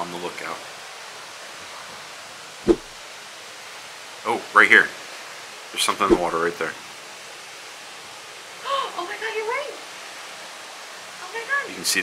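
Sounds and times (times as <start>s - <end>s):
wind rushing: 2.7s - 3.0s, 6.1s - 6.4s.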